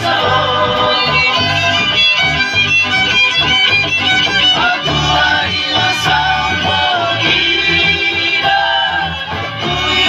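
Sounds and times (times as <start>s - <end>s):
acoustic guitars: 0.0s - 10.0s
group of voices singing: 0.0s - 10.0s
live band music over loudspeakers: 0.0s - 10.0s
low bass notes: 0.0s - 10.0s
high wavering melody: 0.3s - 10.0s.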